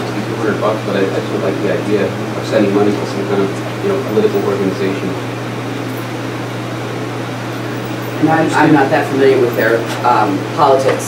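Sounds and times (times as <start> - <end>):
room noise hiss: 0.0 - 11.0
steady low hum: 0.0 - 11.0.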